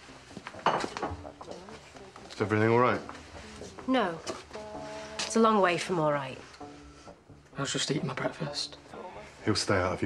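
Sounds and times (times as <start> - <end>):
dishes and cutlery clattering: 0.6 - 1.3.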